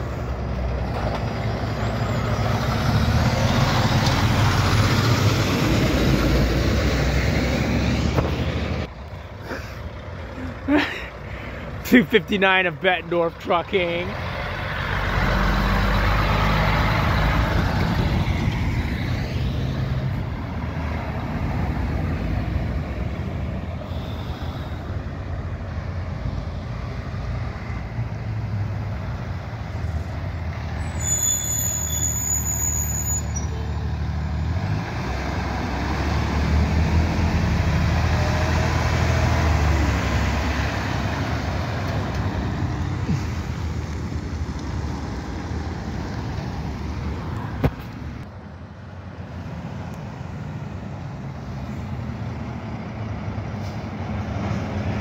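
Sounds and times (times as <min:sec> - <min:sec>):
diesel truck engines: 0:00.0 - 0:55.0
brief high squeal: 0:30.8 - 0:33.8.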